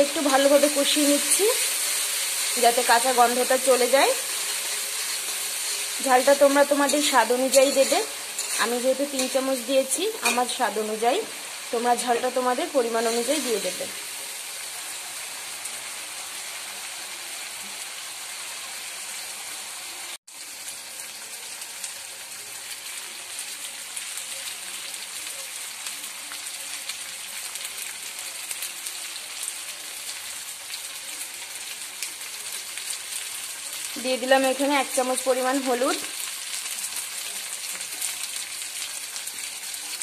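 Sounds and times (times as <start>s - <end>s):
hot oil sizzling and crackling: 0.0s - 40.0s.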